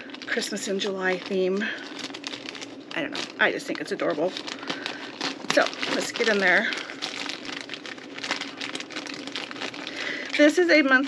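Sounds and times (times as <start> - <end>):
packaging rustling and crinkling: 0.0 - 11.0.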